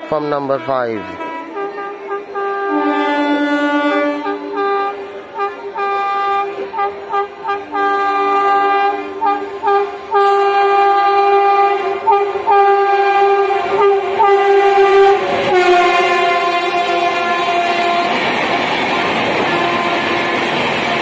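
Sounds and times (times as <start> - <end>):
locomotive horn: 0.0 - 21.0
train rushing past: 0.0 - 21.0.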